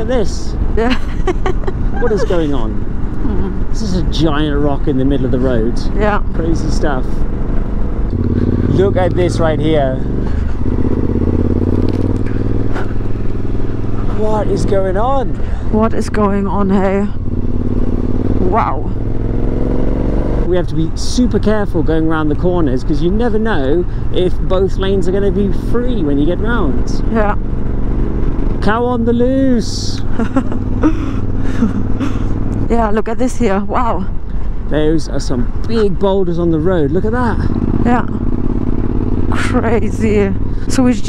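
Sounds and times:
motorcycle engine running: 0:00.0 - 0:41.0
person laughing: 0:00.8 - 0:03.4, 0:30.0 - 0:32.4.

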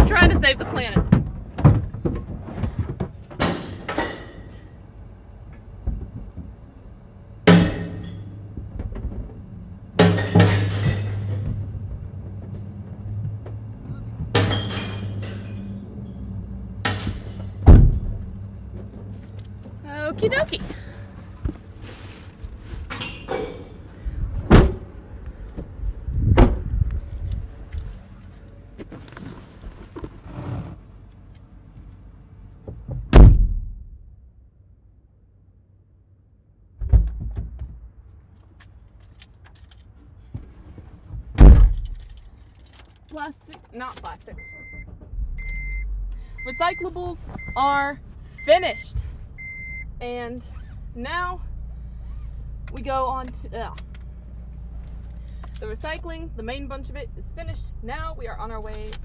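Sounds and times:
recyclables knocking and clattering: 0:00.0 - 0:04.8, 0:05.5 - 0:06.8, 0:07.4 - 0:24.9
low steady hum: 0:00.0 - 0:36.8, 0:37.8 - 0:59.0.

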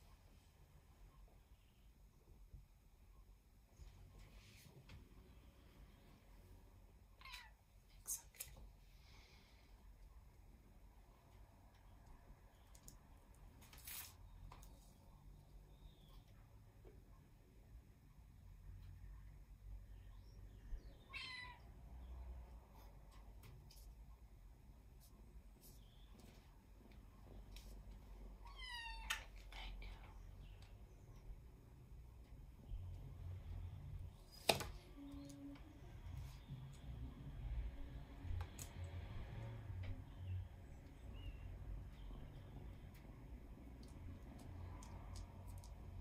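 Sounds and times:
cat meowing: 0:07.2 - 0:07.6, 0:21.1 - 0:21.6, 0:28.4 - 0:29.3.

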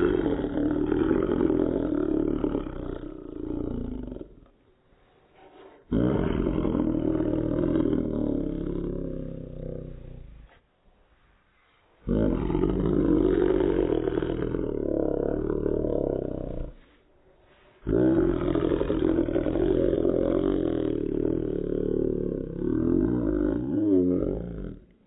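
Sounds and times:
dog growling slowed down: 0:00.0 - 0:04.6, 0:05.6 - 0:10.6, 0:12.0 - 0:16.9, 0:17.8 - 0:25.0.

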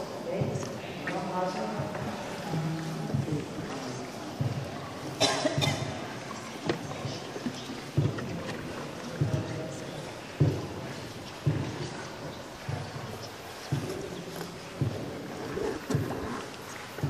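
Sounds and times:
indistinct voices in a cave: 0:00.0 - 0:17.0.

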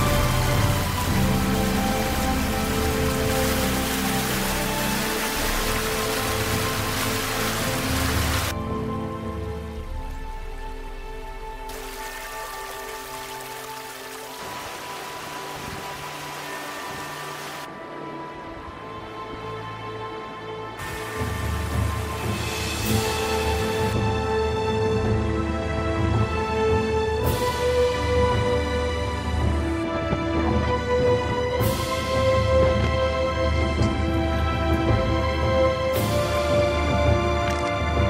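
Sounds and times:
water rushing over rocks: 0:00.0 - 0:08.6, 0:11.6 - 0:17.7, 0:20.8 - 0:24.0
music with long held notes: 0:00.0 - 0:38.0.

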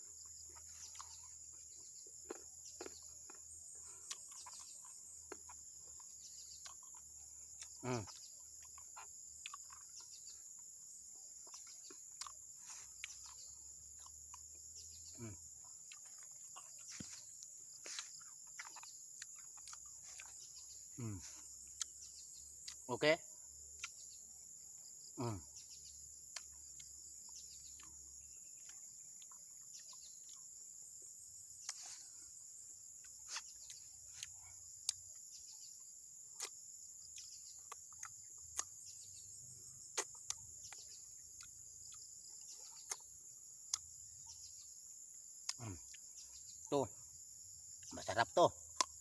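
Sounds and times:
insects droning: 0:00.0 - 0:49.0
man eating: 0:00.1 - 0:22.8, 0:26.2 - 0:35.3, 0:36.3 - 0:39.1, 0:39.8 - 0:43.8
man humming: 0:07.8 - 0:08.1, 0:21.0 - 0:21.4
man speaking: 0:07.8 - 0:08.1, 0:21.0 - 0:21.4, 0:22.9 - 0:23.2, 0:25.2 - 0:25.4, 0:47.9 - 0:48.5.

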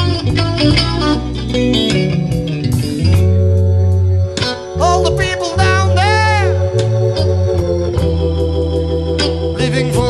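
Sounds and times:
drums: 0:00.0 - 0:04.6, 0:07.5 - 0:08.5
bass line: 0:00.0 - 0:10.0
organ chords: 0:00.0 - 0:10.0.

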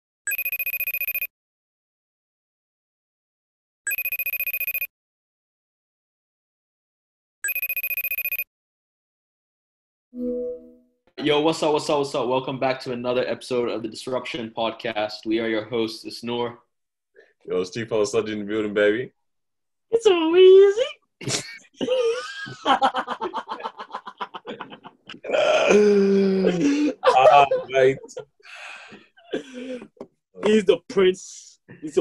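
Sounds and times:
telephone ringing: 0:00.3 - 0:01.3, 0:03.9 - 0:04.9, 0:07.4 - 0:08.5.

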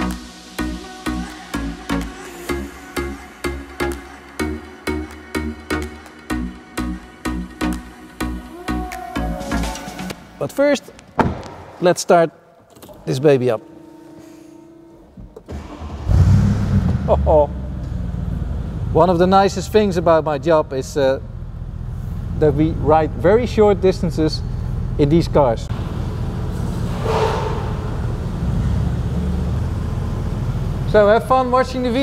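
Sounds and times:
car engine low rumble: 0:15.2 - 0:32.0.

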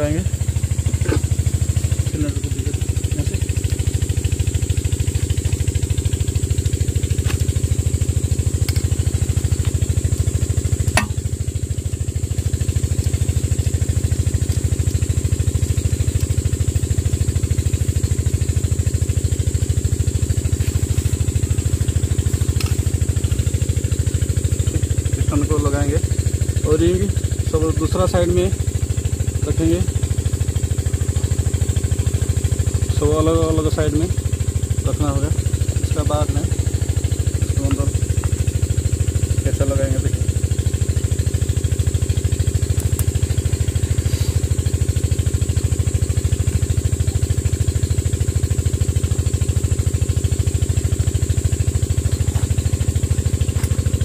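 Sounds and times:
engine running steadily: 0:00.0 - 0:54.0
sharp tap: 0:11.0 - 0:11.2.

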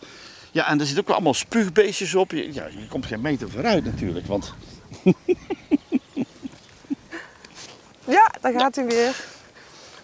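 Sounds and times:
person laughing: 0:04.9 - 0:07.3
breathy chuckles: 0:04.9 - 0:07.4.

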